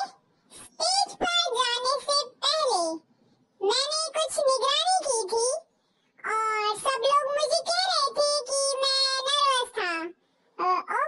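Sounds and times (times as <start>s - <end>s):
high-pitched childlike voice talking: 0.0s - 11.0s.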